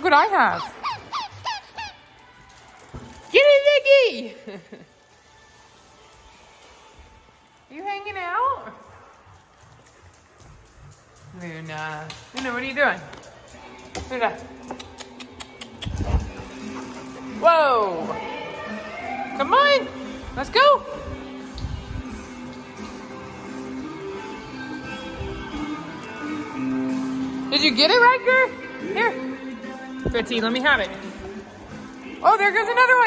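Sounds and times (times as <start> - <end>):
dog toy squeaking: 0.5 - 2.2
dog claws clicking on hard floor: 9.4 - 17.3.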